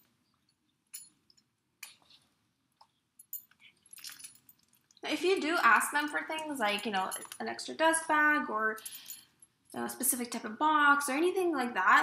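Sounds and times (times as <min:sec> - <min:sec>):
metal clasps clicking: 0:03.2 - 0:05.0.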